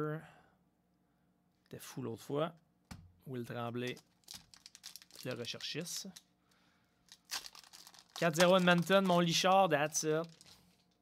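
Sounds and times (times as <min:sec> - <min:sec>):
wrapper crinkling: 0:03.8 - 0:06.3, 0:07.0 - 0:11.0
foil pack ripping: 0:03.9 - 0:06.2, 0:07.1 - 0:10.6.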